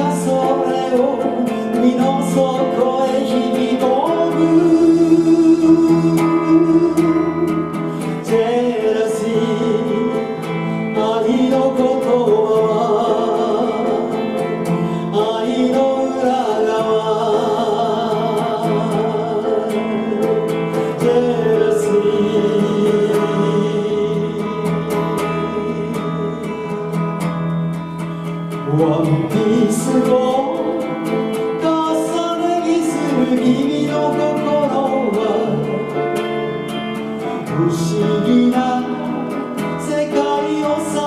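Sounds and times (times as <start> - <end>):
electric guitar and band: 0.0 - 41.0
person singing: 0.0 - 41.0.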